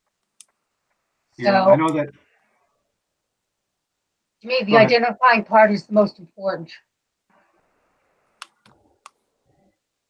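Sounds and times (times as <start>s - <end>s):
faint sharp clicks: 0.2s - 0.6s.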